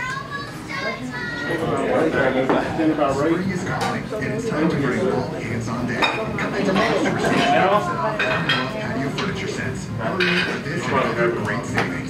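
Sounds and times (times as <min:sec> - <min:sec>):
indistinct chatter of people: 0:00.0 - 0:12.0.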